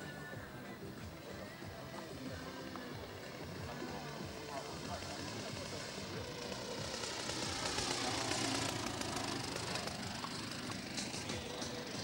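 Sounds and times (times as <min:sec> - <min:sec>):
model airplane engine: 0:01.2 - 0:12.0.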